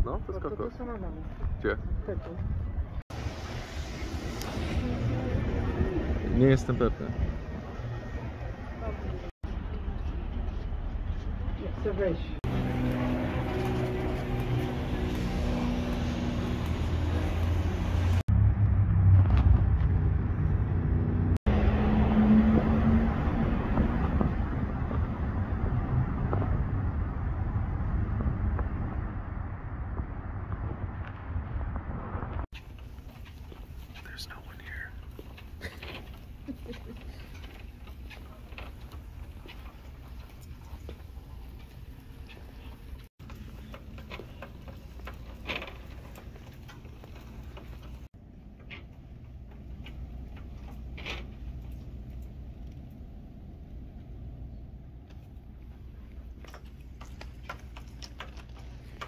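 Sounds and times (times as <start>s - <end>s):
light clicks and rattles: 32.6s - 53.0s, 55.0s - 59.0s.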